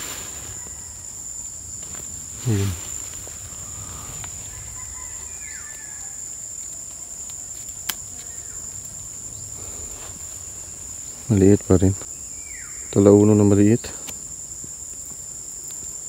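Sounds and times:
insects trilling: 0.0 - 16.0.

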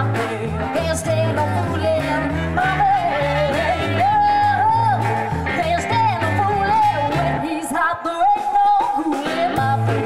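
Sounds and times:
bending lead melody: 0.0 - 7.8
upright bass: 0.0 - 7.8, 9.2 - 10.0
drums: 0.0 - 10.0.

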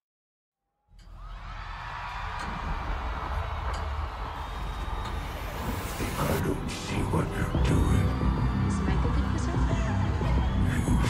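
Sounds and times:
deep bass drone: 1.0 - 11.0
crowd noise: 1.1 - 11.0
live concert music: 4.2 - 11.0.

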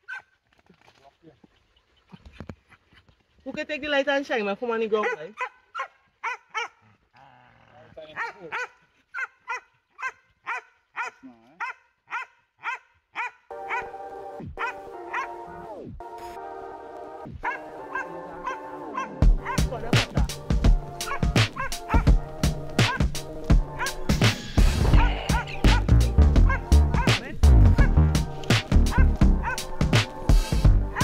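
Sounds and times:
dogs barking: 5.0 - 6.9, 8.1 - 15.7, 17.3 - 24.4, 25.0 - 31.0
background music with heavy beat: 17.2 - 31.0.

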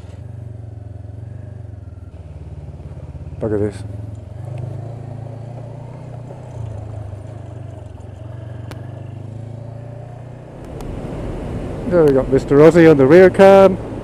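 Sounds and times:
motorcycle engine running: 0.0 - 12.4
wind and road noise rumble: 0.0 - 14.0.

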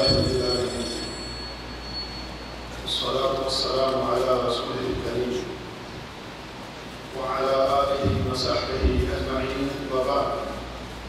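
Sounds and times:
high steady ringing tone: 0.0 - 3.8.

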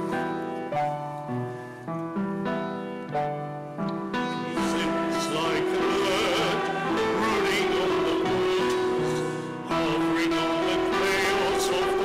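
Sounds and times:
hymn chords on keyboard: 0.0 - 12.0.

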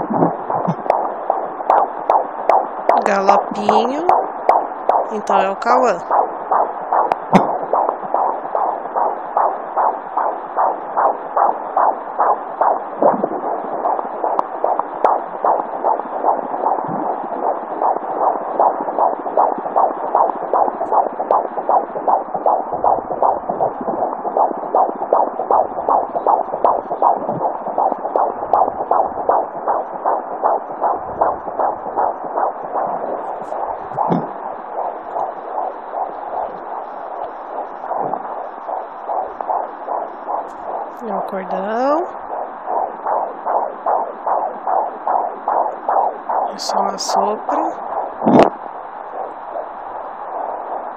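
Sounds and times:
fetal heartbeat through doppler speaker: 0.0 - 50.9
probe rubbing thumps: 0.0 - 50.9.

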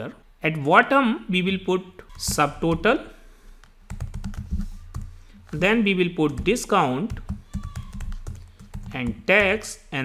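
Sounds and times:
computer keyboard typing: 3.9 - 9.6.

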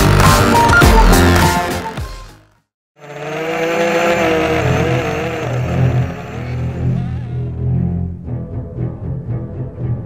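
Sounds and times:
quadcopter motors whining: 3.0 - 7.6.

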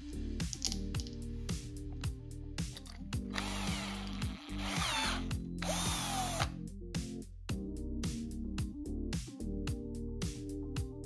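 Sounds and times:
background music with steady beat: 0.0 - 11.0
power tool whirring: 3.3 - 6.6.

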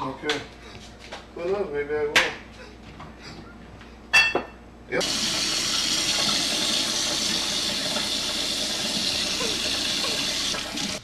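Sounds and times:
running water rushing: 5.0 - 11.0.

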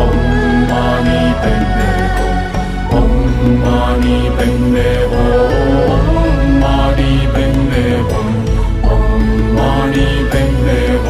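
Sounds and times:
mantra chanted to music: 0.0 - 11.0
steady deep bass: 0.0 - 11.0.

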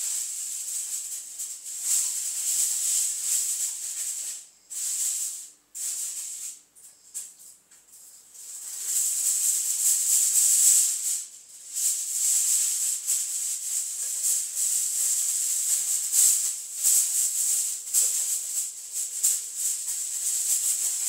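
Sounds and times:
loud high-pitched hiss: 0.0 - 6.7.

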